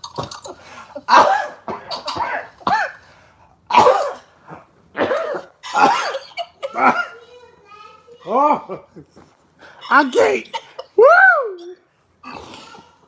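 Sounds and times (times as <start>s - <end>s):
man coughing hard: 1.1s - 3.0s, 3.7s - 4.3s, 5.0s - 7.2s, 9.7s - 11.0s.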